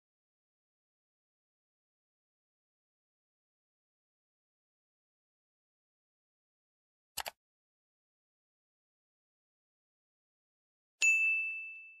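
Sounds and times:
bell-like ding: 11.0s - 12.0s.

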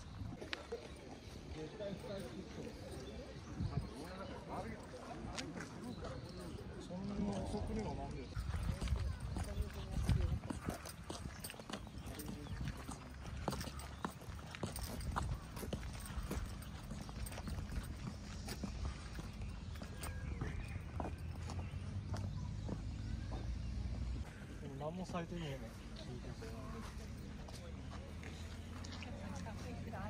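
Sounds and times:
footsteps on a path: 0.0s - 30.0s
people talking: 0.4s - 14.0s, 24.4s - 30.0s.

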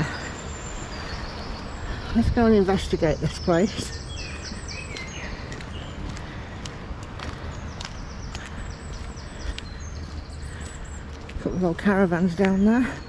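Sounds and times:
footsteps on tarmac: 0.0s - 13.0s
songbirds chirping: 0.0s - 13.0s.

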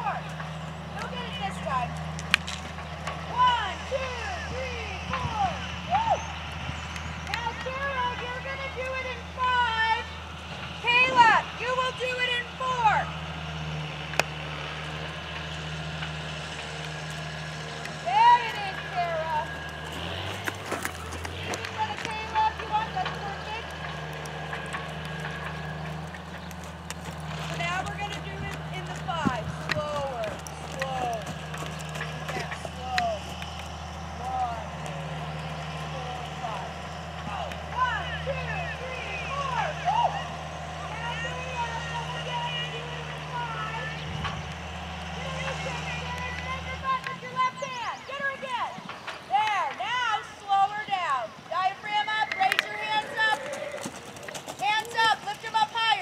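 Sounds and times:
steady low hum: 0.0s - 49.3s.

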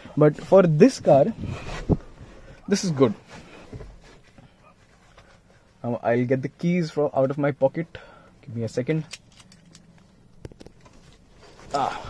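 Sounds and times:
car keys clinking: 9.0s - 10.1s.

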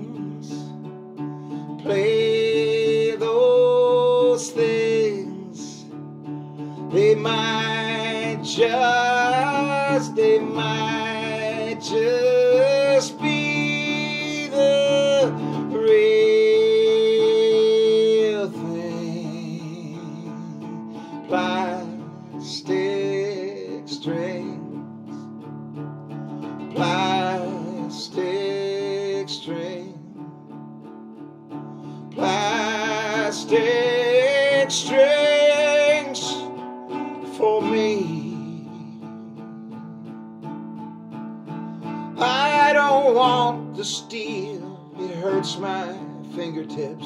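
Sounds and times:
acoustic guitar chords: 0.0s - 47.0s.

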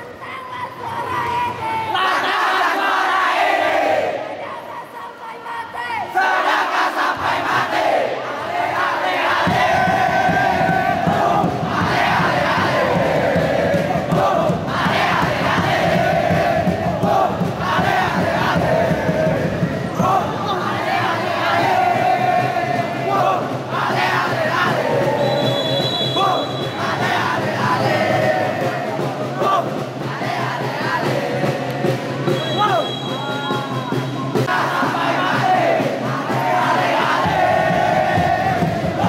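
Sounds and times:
crowd of men chanting: 1.9s - 32.6s, 34.3s - 39.0s.

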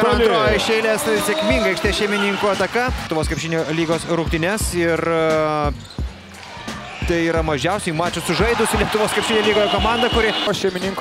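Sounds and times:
faint arena background: 0.0s - 11.0s.

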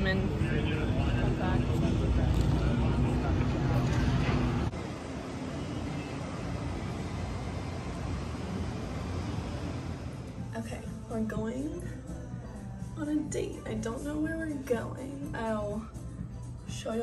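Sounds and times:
faint voices: 0.0s - 7.2s
traffic rumble: 0.0s - 11.7s.

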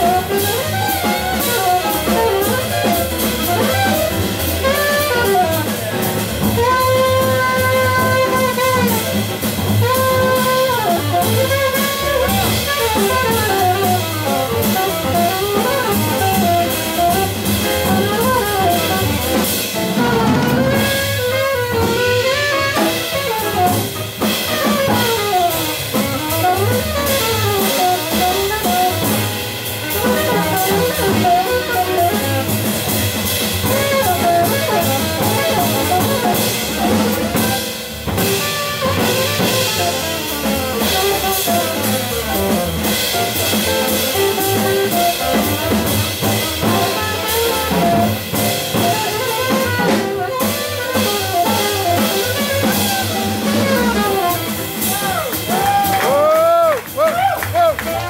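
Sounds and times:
plucked double bass: 0.0s - 55.5s
alto saxophone solo: 0.0s - 58.0s
drum kit with cymbals: 0.0s - 58.0s.

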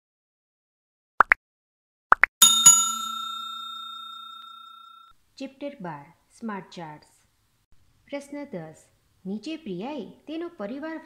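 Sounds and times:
bell-like ding: 2.4s - 5.1s.

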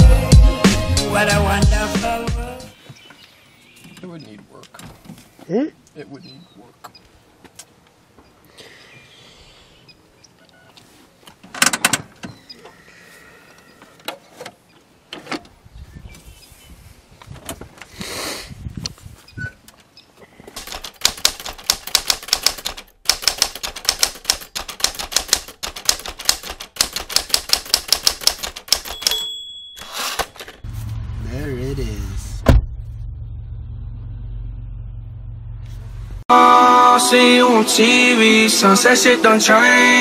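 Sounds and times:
typewriter key clacks: 20.6s - 29.3s
carriage-return bell ding: 28.9s - 30.6s.

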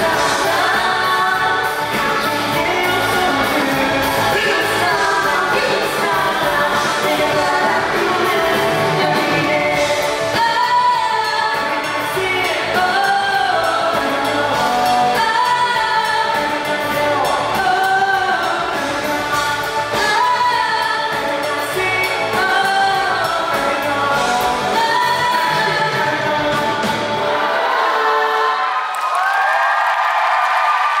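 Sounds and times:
woman singing: 0.0s - 27.5s
live band playing pop song: 0.0s - 28.7s.

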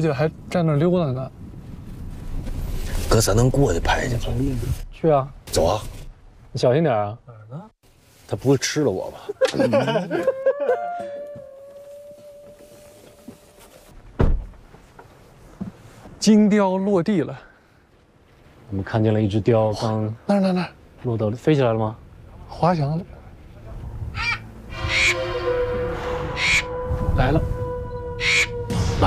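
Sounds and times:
car door thunk: 14.1s - 14.6s
harsh bird calls: 24.1s - 25.5s, 26.2s - 26.9s, 27.8s - 28.8s.

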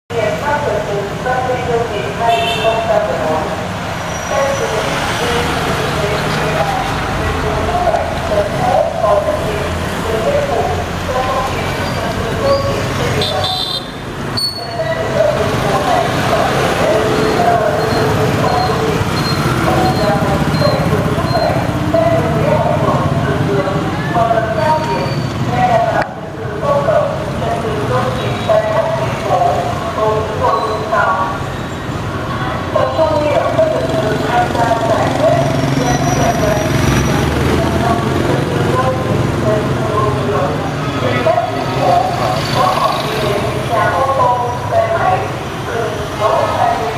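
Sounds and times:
city traffic: 0.0s - 46.9s
people talking: 0.1s - 3.6s, 4.3s - 13.8s, 14.5s - 31.4s, 32.2s - 46.9s
motorbike engines passing: 0.1s - 46.9s.

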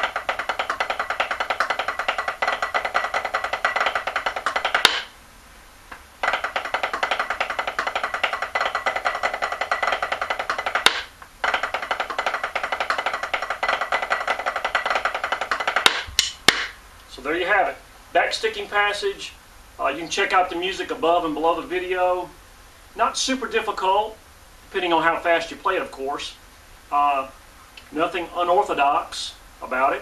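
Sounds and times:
snare drum played with sticks: 0.0s - 5.2s, 6.2s - 16.8s.

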